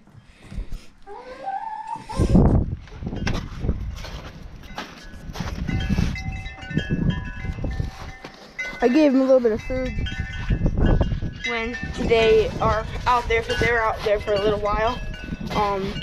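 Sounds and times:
chickens clucking and calling: 1.1s - 2.6s.

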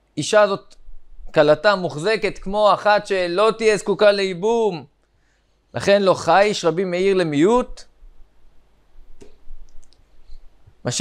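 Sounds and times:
man speaking: 0.2s - 4.9s, 5.8s - 7.9s.

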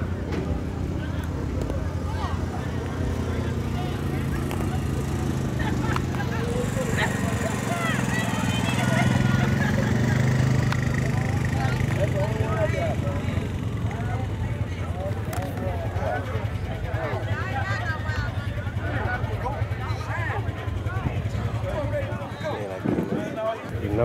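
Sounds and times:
engine humming: 0.0s - 24.0s
people talking: 0.0s - 24.0s.

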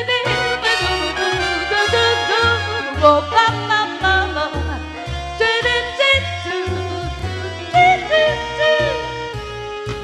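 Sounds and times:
swing band music: 0.0s - 10.0s.

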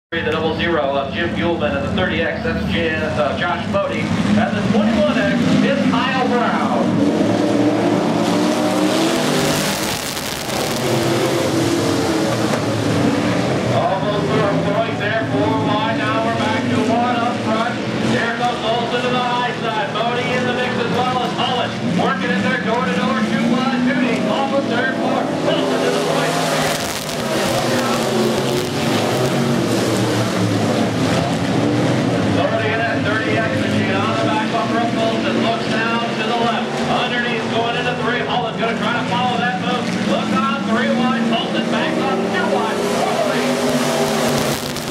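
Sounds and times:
race car engines: 0.1s - 44.9s.

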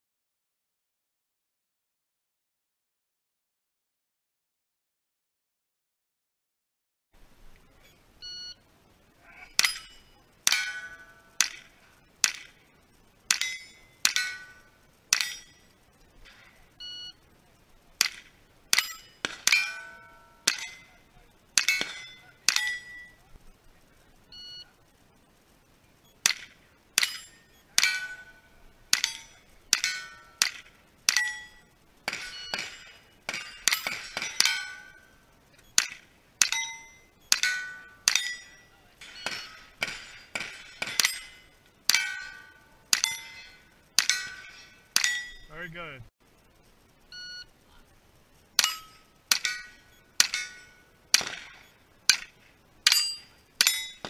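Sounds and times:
shot timer beep: 7.9s - 8.6s, 16.8s - 17.3s, 24.3s - 24.7s, 47.1s - 47.5s
steel plate clanging: 9.4s - 16.8s, 18.0s - 23.4s, 26.2s - 45.9s, 48.6s - 54.0s
rifle shots: 18.0s - 19.8s, 48.6s - 54.0s.

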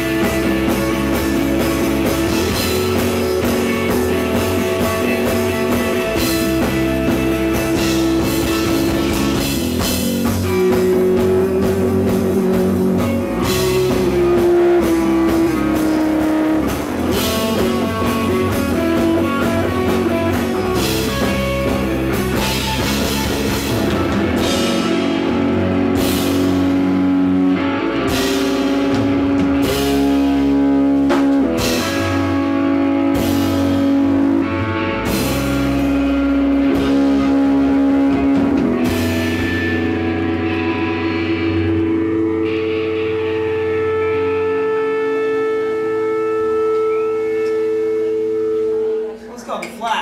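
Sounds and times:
bass guitar: 0.0s - 50.0s
drum kit: 0.0s - 50.0s
electric guitars: 0.0s - 50.0s.

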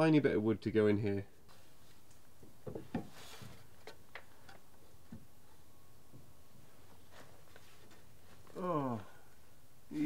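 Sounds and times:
wood knocks and clicks: 2.4s - 3.2s.

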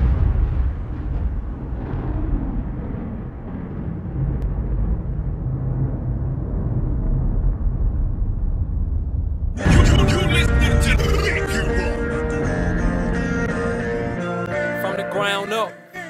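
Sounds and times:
deep low rumble drone: 0.0s - 13.5s.

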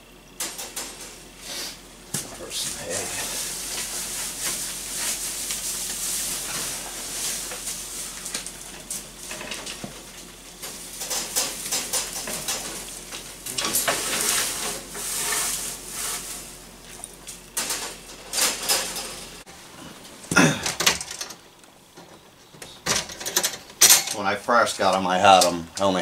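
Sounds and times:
dry hay rustling: 1.1s - 19.4s
cage wire clicks and rattles: 10.6s - 14.0s, 22.9s - 24.2s.

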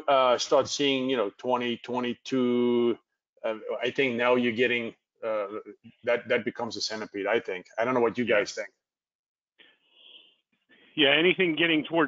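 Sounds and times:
person breathing softly: 9.6s - 11.0s.

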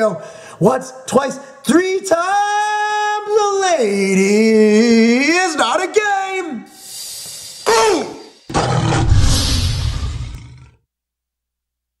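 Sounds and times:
big cat growl and roar: 8.5s - 10.8s.

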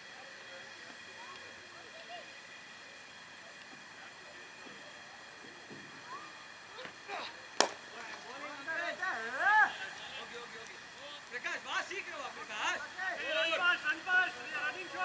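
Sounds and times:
cricket bat hitting ball: 7.6s - 8.1s
players shouting: 7.6s - 10.3s, 12.6s - 15.0s.

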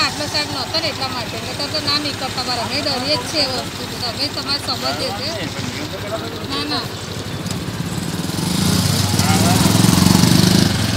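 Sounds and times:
vehicle engine drone: 0.0s - 10.9s.

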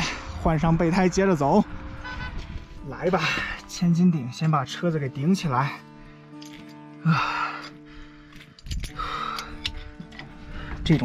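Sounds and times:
background music held notes: 0.0s - 11.0s
metallic clicks and knocks: 8.4s - 11.0s.

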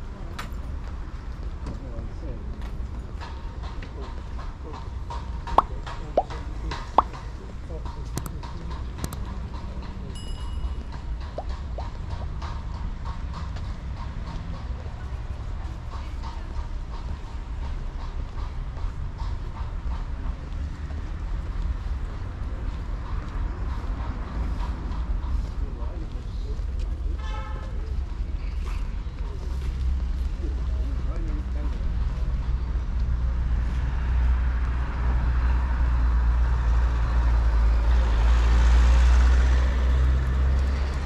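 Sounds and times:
traffic: 0.0s - 41.0s
voices of passers-by: 0.0s - 41.0s.

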